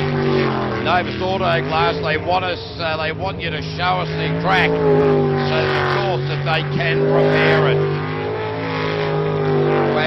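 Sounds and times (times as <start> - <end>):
boat engine at high revs: 0.0 - 10.0.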